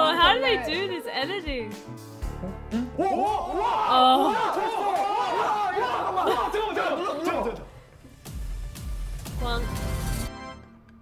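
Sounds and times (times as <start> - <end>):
young men shouting excitedly: 3.0 - 7.7.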